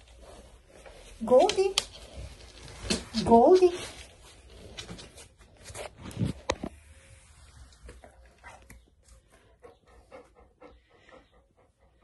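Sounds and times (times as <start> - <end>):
dog panting softly: 9.2 - 12.0.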